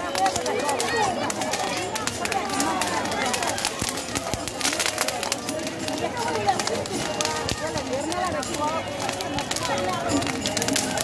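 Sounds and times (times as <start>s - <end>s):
crowd talking and calling out: 0.0s - 11.0s
sharp clicks and crackles: 0.0s - 11.0s.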